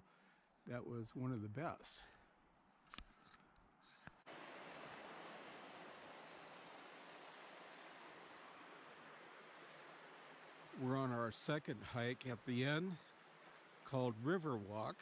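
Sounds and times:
river rushing over rocks: 0:04.3 - 0:14.0.

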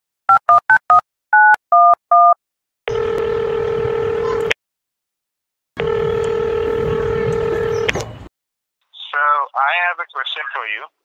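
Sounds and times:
telephone keypad beeps: 0:01.4 - 0:03.0
telephone ringing tone: 0:01.4 - 0:04.5, 0:05.8 - 0:07.9.

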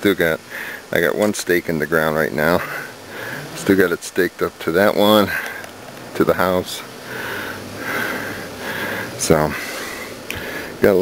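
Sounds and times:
person breathing: 0:00.5 - 0:00.9, 0:02.6 - 0:03.6, 0:07.0 - 0:10.8.

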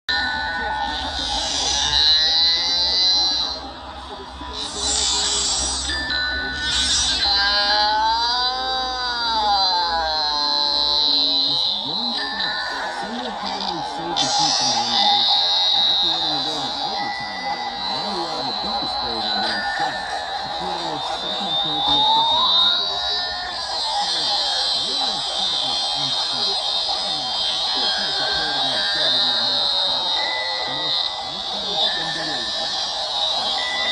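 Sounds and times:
music with voice: 0:00.1 - 0:33.9
wavering high wailing tone: 0:00.1 - 0:33.9
person speaking over music: 0:10.6 - 0:32.8.

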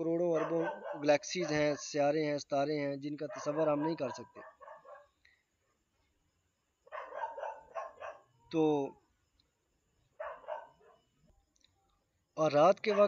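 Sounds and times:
man speaking: 0:00.0 - 0:04.4, 0:08.5 - 0:09.0, 0:12.4 - 0:13.0
small dog yapping: 0:00.4 - 0:01.1, 0:06.9 - 0:08.2, 0:10.2 - 0:11.0.

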